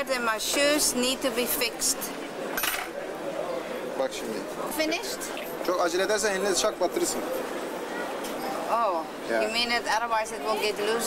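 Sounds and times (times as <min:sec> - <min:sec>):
street noise: 0:00.0 - 0:11.0.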